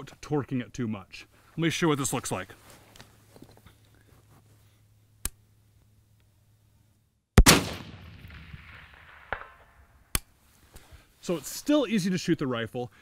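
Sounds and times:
rifle shot with echo: 7.4 - 10.2.

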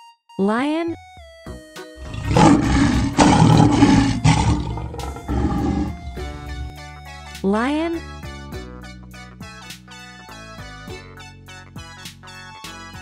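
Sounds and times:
lion roaring: 2.0 - 6.7.

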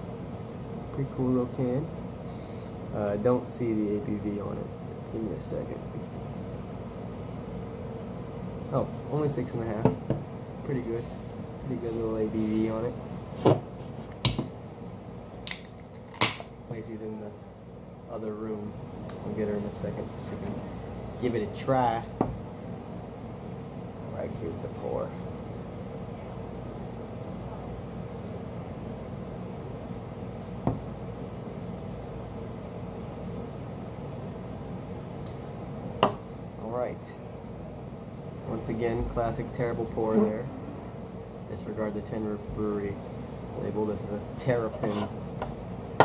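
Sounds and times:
steady background hum: 0.0 - 46.0
dull knock on can: 30.6 - 30.8.

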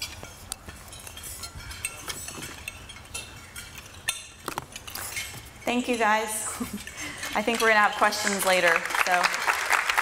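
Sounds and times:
cutlery and dishes clinking: 0.0 - 8.6.

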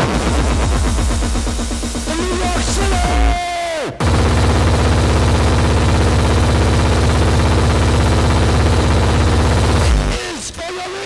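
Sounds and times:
steady held tone: 0.0 - 10.6.

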